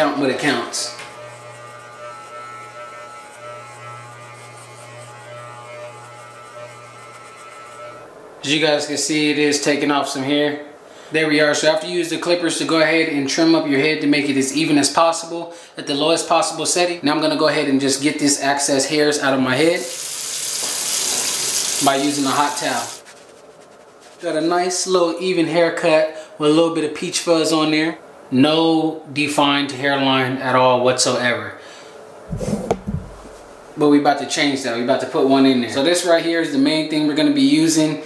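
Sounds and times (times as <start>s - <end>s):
electric hair clippers buzzing: 0.4s - 8.1s, 19.8s - 23.0s
water running from a tap: 19.8s - 23.0s.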